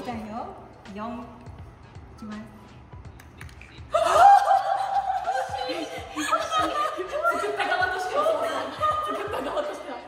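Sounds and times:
women laughing: 3.9 - 10.0.

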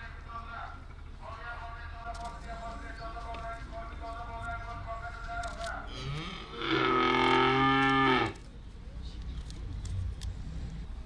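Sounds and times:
cow mooing: 5.9 - 8.4.

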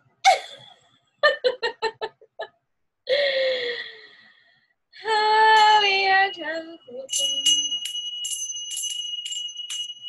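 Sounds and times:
woman laughing: 0.3 - 2.5.

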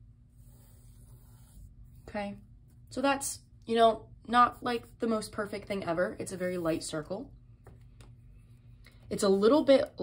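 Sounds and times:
pencil scratching on paper: 0.3 - 2.9, 4.4 - 7.1.

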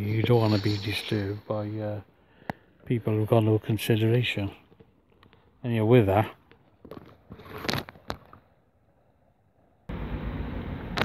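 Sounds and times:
steady rushing noise: 0.0 - 2.0.

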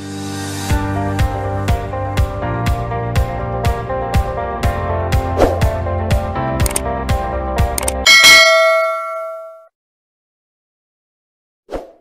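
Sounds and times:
bell chime: 8.1 - 9.7.

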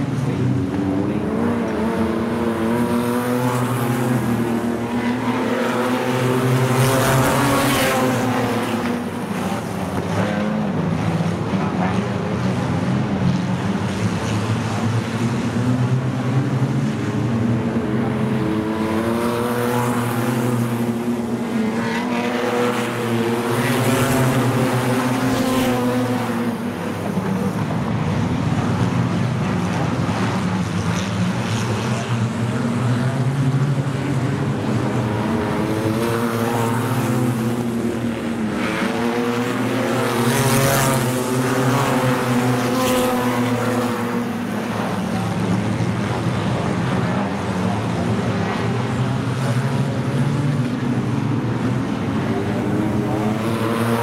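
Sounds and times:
race car engines: 0.0 - 54.0.

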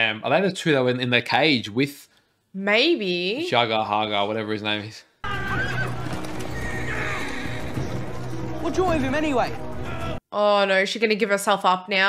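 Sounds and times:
horses neighing: 5.2 - 8.3
men shouting: 5.2 - 10.2
hooves clattering: 5.3 - 9.4.

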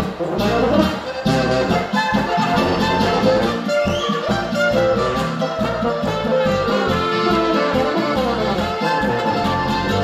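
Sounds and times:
accordion: 0.0 - 10.0
brass bass line: 0.0 - 10.0
clarinet: 0.0 - 10.0
folk band playing polka: 0.0 - 10.0
trumpet: 0.0 - 10.0.

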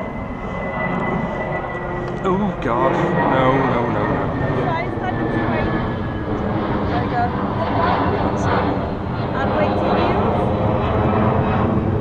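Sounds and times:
steady low rumble: 0.0 - 12.0
wind buffeting microphone: 0.0 - 12.0
faint voices of people: 6.9 - 8.7.

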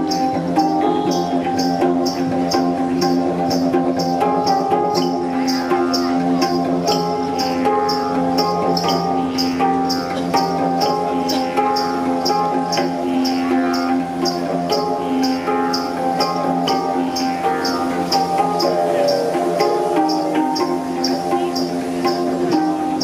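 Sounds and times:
didgeridoo drone: 0.0 - 23.0
handpan notes: 0.0 - 23.0.

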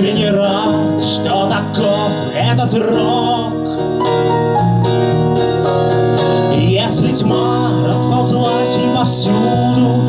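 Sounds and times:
acoustic guitars strumming chords: 0.0 - 10.0.

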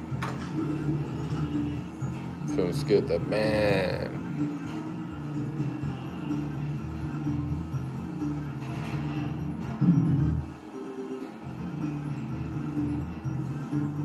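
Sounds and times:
electronic slot machine music: 0.0 - 14.0.

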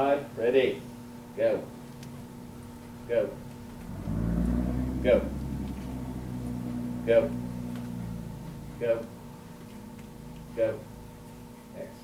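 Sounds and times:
low rumble: 3.0 - 10.4.

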